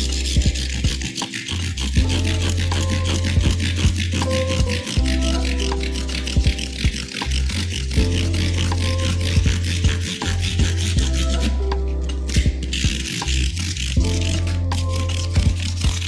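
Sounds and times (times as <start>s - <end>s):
background music with bass line: 0.0s - 16.0s
sandpaper rubbing on wood: 0.0s - 16.0s.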